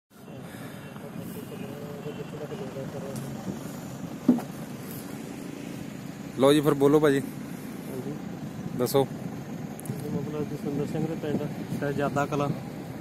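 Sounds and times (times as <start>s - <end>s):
faint distant voices: 0.1s - 13.0s
low outdoor rumble: 0.1s - 13.0s.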